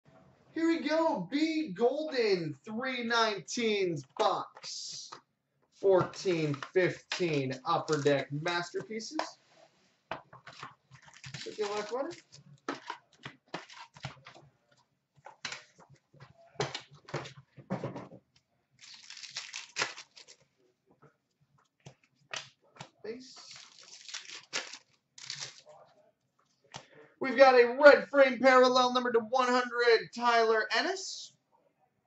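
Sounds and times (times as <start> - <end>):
wrapper crinkling and tearing: 10.5 - 13.0, 13.6 - 14.2, 18.8 - 20.4, 23.3 - 25.7.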